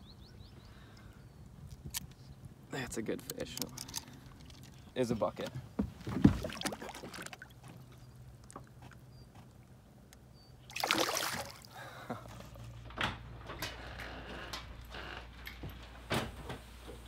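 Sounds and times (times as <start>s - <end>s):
fish splashing: 6.1s - 7.9s, 10.7s - 11.9s.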